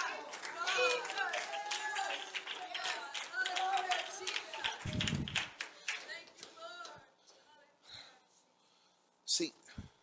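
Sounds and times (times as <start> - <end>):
congregation clapping: 0.0 - 7.0.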